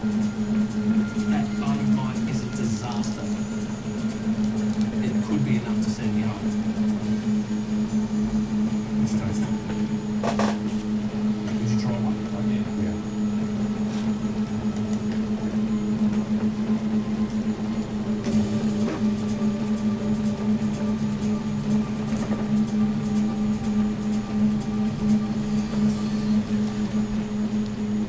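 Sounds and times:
printer motor hum: 0.0s - 28.0s.

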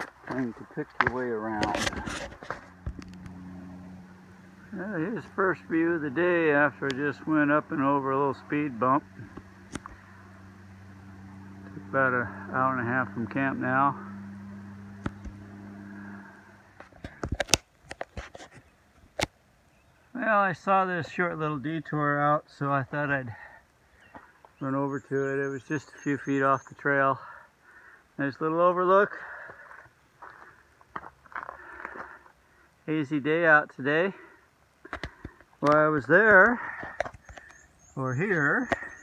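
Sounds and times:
footsteps on rocks and leaves: 0.0s - 3.3s, 29.5s - 32.2s
steady low hum: 0.0s - 17.5s
low engine-like drone: 0.0s - 17.6s, 35.1s - 39.0s.

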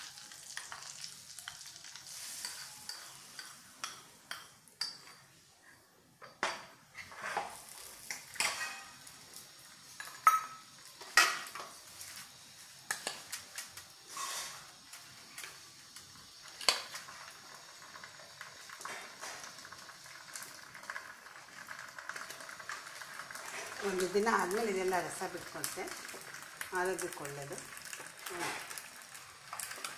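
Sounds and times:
spoon scraping steel bowl: 2.1s - 3.6s
steel bowls and spoon clinking: 2.1s - 5.3s, 8.1s - 9.0s, 10.0s - 11.6s.

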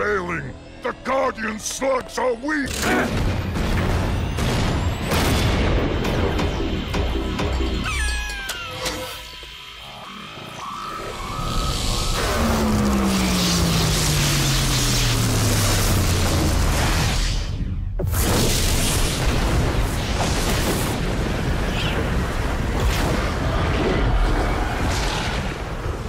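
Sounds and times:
dramatic cartoon score: 0.0s - 19.5s
low tone sliding downward: 7.8s - 15.7s.

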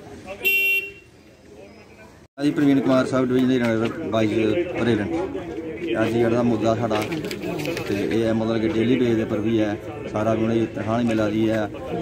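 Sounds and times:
faint street background: 0.0s - 12.0s
vehicle horn toot: 0.4s - 1.1s.

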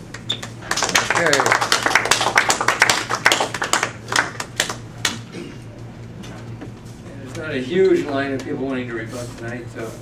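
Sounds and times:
audience clapping: 0.0s - 5.3s.

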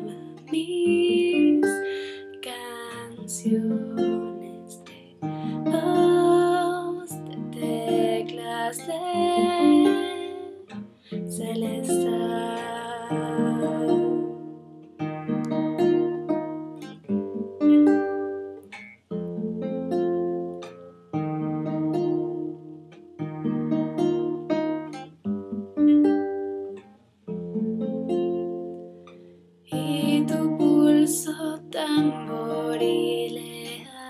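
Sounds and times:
acoustic guitar plucked chords: 0.0s - 34.0s.

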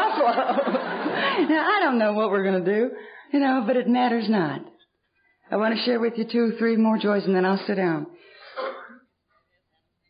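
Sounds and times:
woman clearing her throat: 8.5s - 9.1s.

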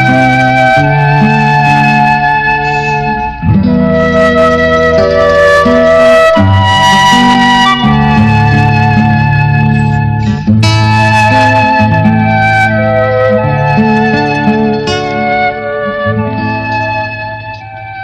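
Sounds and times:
instrumental film music: 0.0s - 18.0s.

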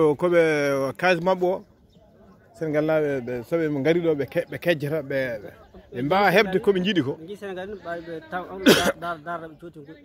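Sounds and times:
throat clearing: 8.6s - 9.0s.

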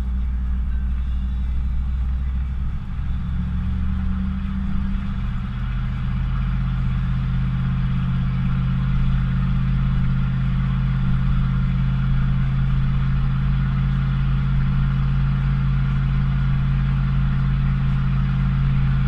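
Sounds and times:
truck engine low hum: 0.0s - 19.0s.

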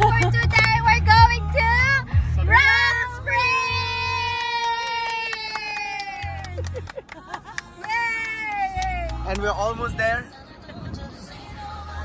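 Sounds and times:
pop music with bass beat: 0.0s - 4.3s, 6.2s - 12.0s.

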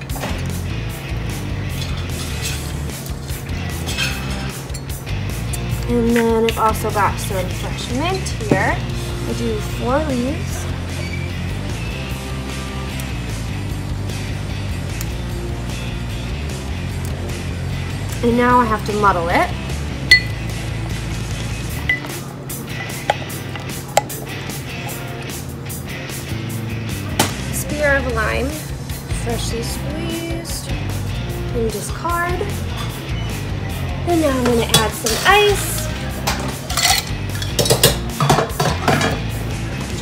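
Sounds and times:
muddler clinking against glass: 20.1s - 20.4s, 36.7s - 39.1s
ice cubes clinking in glass: 36.7s - 38.0s.

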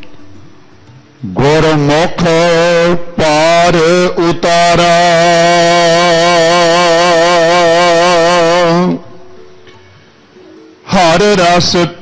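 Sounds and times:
low drone: 0.0s - 10.9s
man singing long note: 1.2s - 9.3s.

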